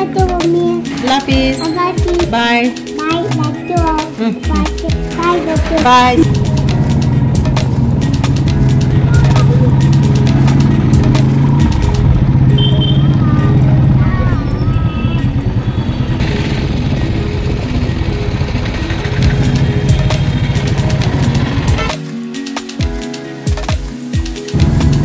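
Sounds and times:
motorcycle engine running: 0:04.7 - 0:22.0, 0:24.5 - 0:25.0.

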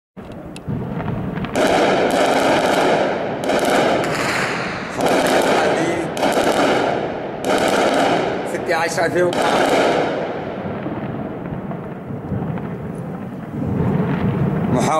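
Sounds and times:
gunshot cracks: 0:00.6 - 0:13.0
heavy automatic gunfire: 0:00.8 - 0:12.8.

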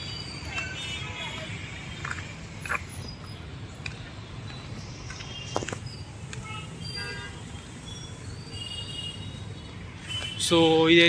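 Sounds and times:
distant road traffic rumble: 0:00.0 - 0:11.0.

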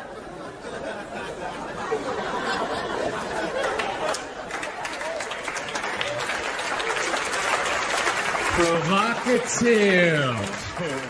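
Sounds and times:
audience laughing: 0:00.0 - 0:05.4
audience clapping: 0:03.4 - 0:11.0.

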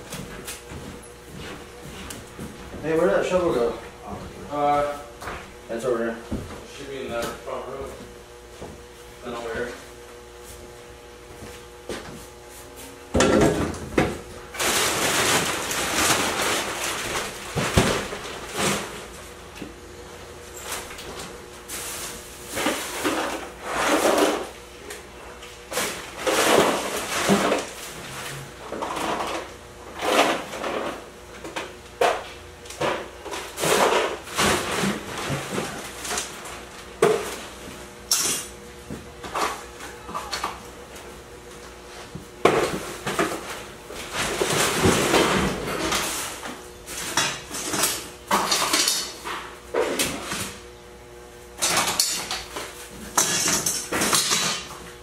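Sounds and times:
clattering and rustling of junk: 0:13.2 - 0:19.2, 0:25.7 - 0:40.6, 0:42.0 - 0:50.6, 0:51.6 - 0:55.0.

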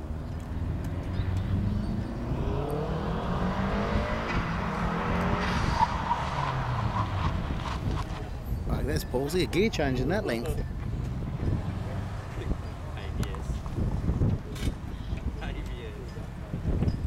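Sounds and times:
car engine pulling hard: 0:00.6 - 0:08.9
tyre squeals: 0:05.4 - 0:08.4.

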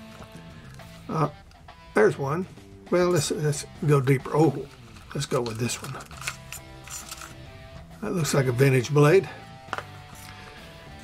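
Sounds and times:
background music with held tones: 0:00.0 - 0:11.0
razor blades clicking together: 0:04.7 - 0:07.4.

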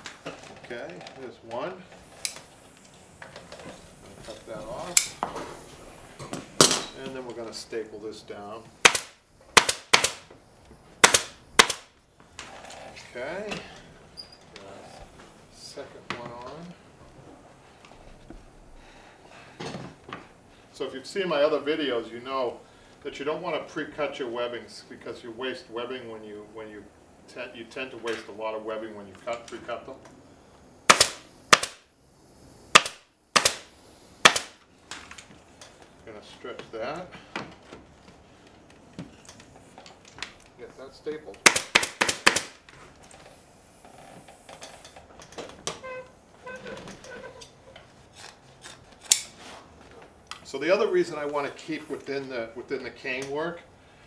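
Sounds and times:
pneumatic staple gun firing: 0:08.8 - 0:10.3, 0:11.0 - 0:11.9, 0:30.8 - 0:31.9, 0:32.7 - 0:35.3, 0:41.4 - 0:42.7, 0:48.2 - 0:49.4.

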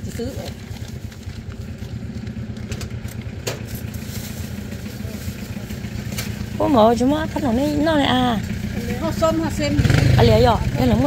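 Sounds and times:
small engine idling: 0:00.0 - 0:11.0.

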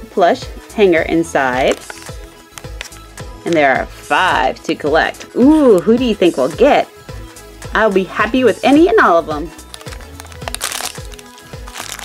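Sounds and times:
background music with steady beat: 0:00.0 - 0:12.0
plastic foil bag crinkling: 0:01.6 - 0:03.6, 0:09.5 - 0:12.0.

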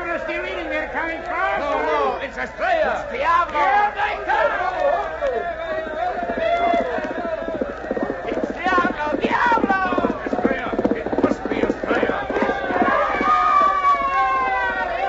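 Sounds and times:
voices shouting and cheering: 0:00.0 - 0:15.0
galloping horses hoofbeats: 0:00.2 - 0:15.0.

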